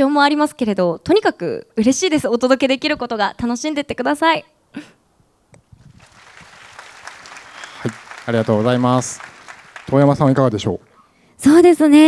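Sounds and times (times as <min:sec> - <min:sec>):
audience applause: 0:05.8 - 0:11.0.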